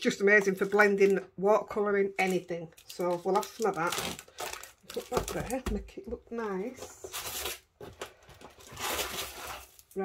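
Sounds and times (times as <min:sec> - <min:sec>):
plastic packaging crinkling: 0:02.1 - 0:05.9, 0:06.7 - 0:10.0.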